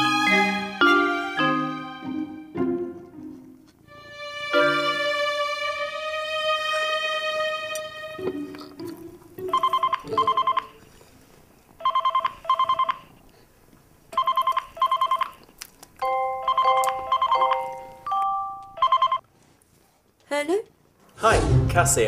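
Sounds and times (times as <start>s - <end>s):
telephone ringing: 9.4s - 10.8s, 11.8s - 13.1s, 14.2s - 15.4s, 16.0s - 19.2s.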